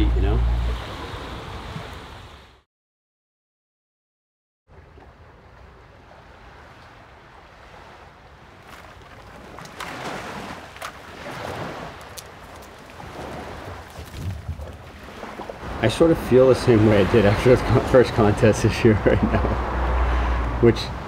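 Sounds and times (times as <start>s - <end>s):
wind: 0.0s - 2.7s, 4.7s - 21.0s
surf: 4.7s - 21.0s
palm fronds rustling: 8.6s - 15.6s.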